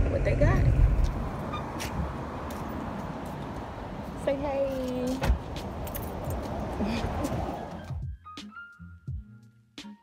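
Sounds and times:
outdoor traffic: 0.0 - 9.7.

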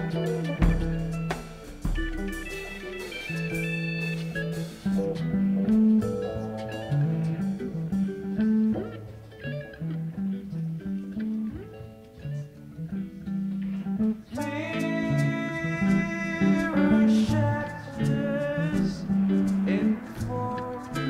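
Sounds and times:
rock band full chord: 0.0 - 9.2
bass guitar: 0.0 - 21.0
electric guitar lines: 0.0 - 21.0.

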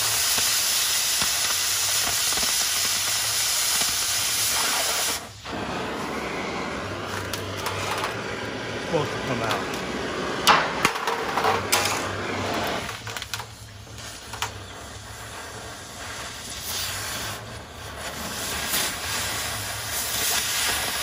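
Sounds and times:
cutting torch hissing: 0.0 - 21.0.

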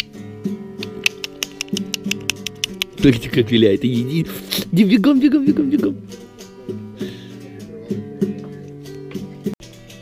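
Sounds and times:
quick percussive clicks: 0.8 - 3.0
sharp click: 0.8 - 3.0.

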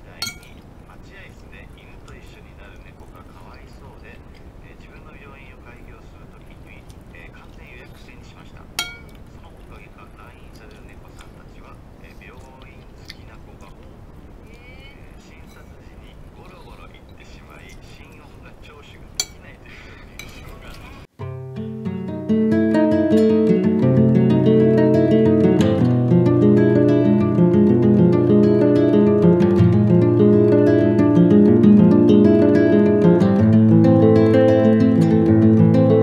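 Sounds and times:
table and eating sounds: 0.0 - 0.7, 8.8 - 9.4, 15.4 - 15.8, 19.2 - 21.0
metal spoon clinking ceramic plate: 0.2 - 0.6, 8.8 - 9.2, 19.2 - 19.4, 20.2 - 20.5.

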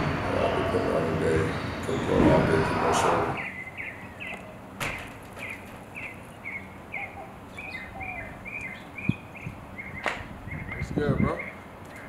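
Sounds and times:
small bird chirping: 2.9 - 12.0.

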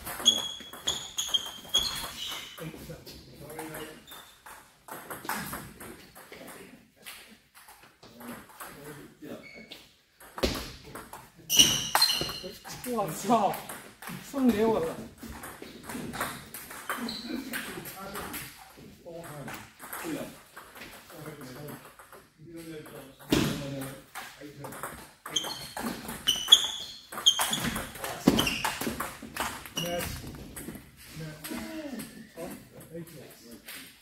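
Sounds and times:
shoe squeaks: 0.1 - 2.7, 3.7 - 4.5, 9.3 - 9.9, 11.5 - 12.6, 16.9 - 17.5, 25.2 - 29.0, 29.7 - 30.3.

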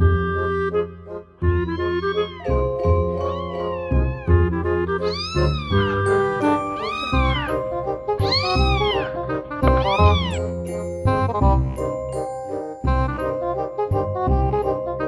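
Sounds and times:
background music: 0.0 - 15.0
kitten meowing: 1.7 - 10.6.

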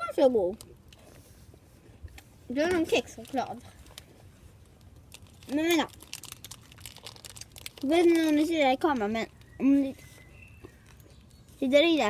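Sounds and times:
foil wrapper crinkling: 2.7 - 12.0.

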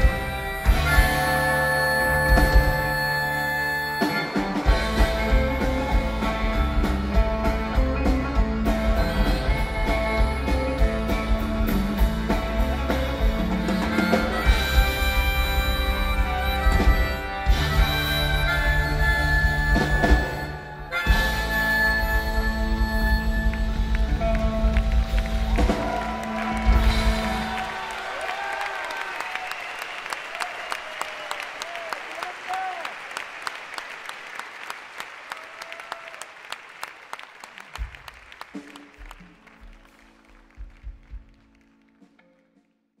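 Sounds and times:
audience clapping and cheering: 22.7 - 42.3
audience whoops: 24.2 - 38.0.

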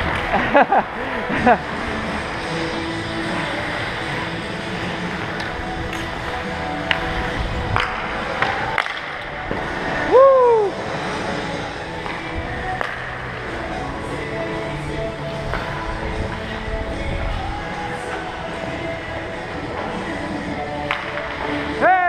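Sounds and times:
hockey sticks and puck clacking: 0.0 - 10.1, 10.9 - 22.0
faint background music: 0.0 - 22.0
skate blades scraping ice: 0.0 - 22.0
person shouting: 10.1 - 10.7, 21.8 - 22.0.

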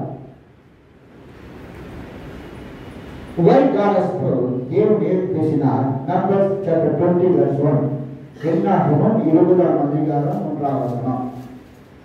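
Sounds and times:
man's amplified voice: 0.0 - 0.4, 3.4 - 11.6
steady background noise: 0.0 - 12.0.

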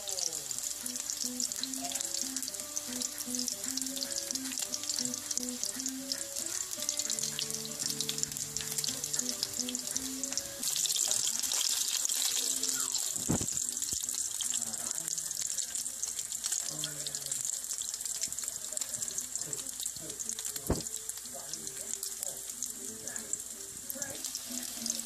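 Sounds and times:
deep-frying crackling sizzle: 0.0 - 25.0
low thump: 20.7 - 20.9.

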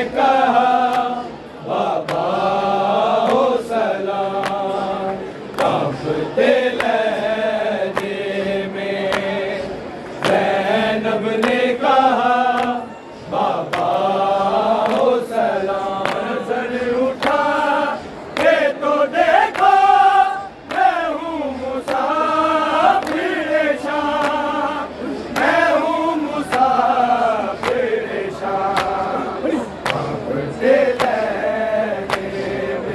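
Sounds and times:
men chanting in unison: 0.0 - 32.9
sharp hand slaps: 2.0 - 2.3, 4.4 - 4.8, 5.5 - 5.9, 7.9 - 8.2, 9.1 - 9.3, 10.2 - 10.5, 13.6 - 14.1, 14.8 - 15.1, 16.0 - 16.4, 23.0 - 23.3, 24.1 - 24.4, 26.4 - 26.8, 27.6 - 27.8, 28.7 - 29.0, 29.8 - 30.2, 32.1 - 32.3.

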